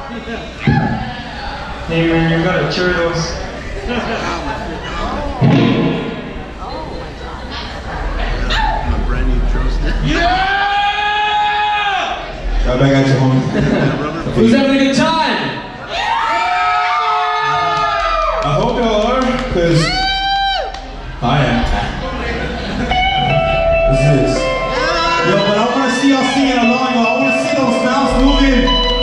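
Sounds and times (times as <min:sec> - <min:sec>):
bar background noise: 0:00.0 - 0:29.0
bass guitar: 0:17.8 - 0:29.0
electric guitar: 0:21.6 - 0:29.0
live rock band playing: 0:22.4 - 0:29.0.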